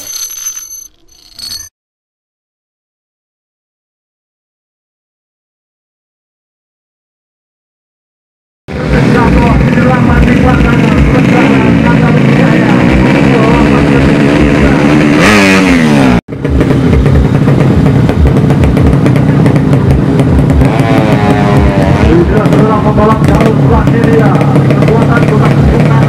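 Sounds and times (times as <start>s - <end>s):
motorcycle engine revving: 8.7s - 26.0s.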